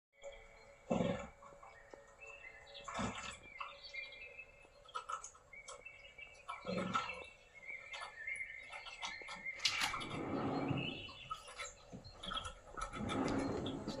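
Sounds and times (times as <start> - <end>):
songbirds chirping: 0.2 - 14.0.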